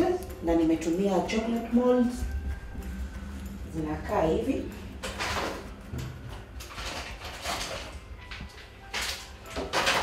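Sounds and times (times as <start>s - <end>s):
low steady hum: 0.0s - 9.9s.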